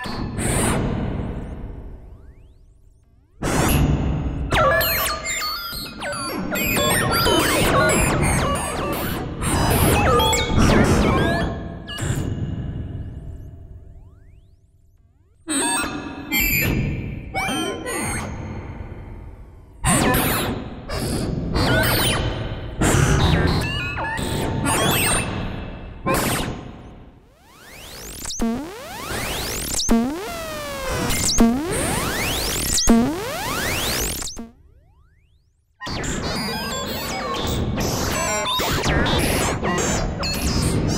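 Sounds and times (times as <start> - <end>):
synthesizer pitch sweeps: 27.3 - 35.4
repeated electronic pings: 27.4 - 35.0.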